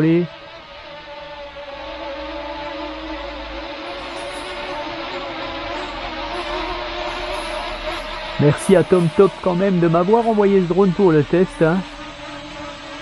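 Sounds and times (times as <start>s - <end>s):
quadcopter propellers whining: 0.0s - 13.0s.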